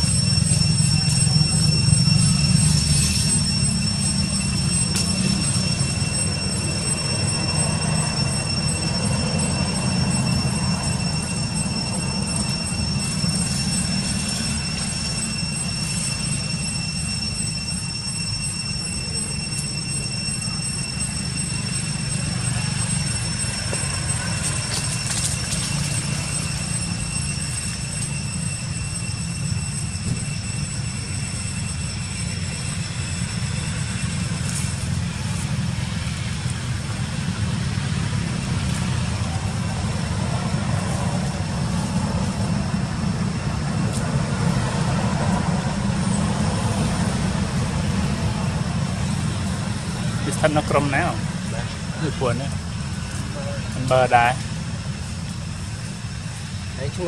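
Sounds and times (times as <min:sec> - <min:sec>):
faint high-pitched tones: 0:00.0 - 0:57.0.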